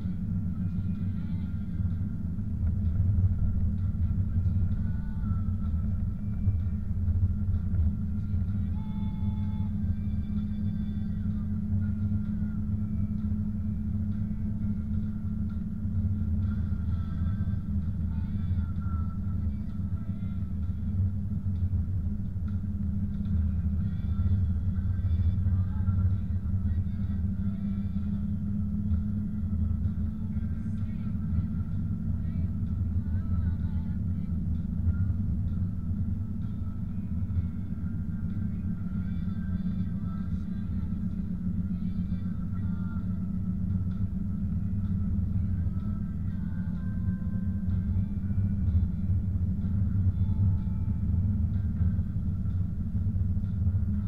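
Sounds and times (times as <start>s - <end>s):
car engine rumble: 0.0s - 54.0s.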